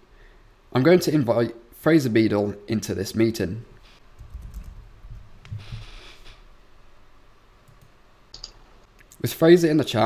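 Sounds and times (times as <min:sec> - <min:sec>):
keyboard and mouse clicks: 0:04.2 - 0:04.8, 0:07.7 - 0:09.2.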